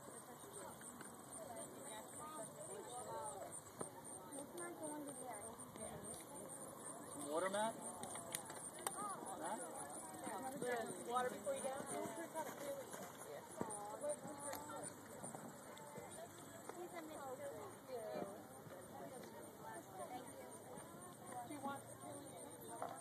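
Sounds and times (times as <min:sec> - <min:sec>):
chatter of voices: 0:00.0 - 0:23.0.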